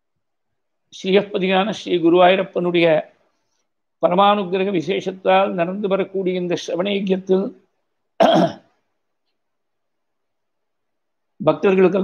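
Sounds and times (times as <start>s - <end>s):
man reciting: 0.9s - 3.2s, 11.4s - 12.0s
man coughing: 8.2s - 8.8s.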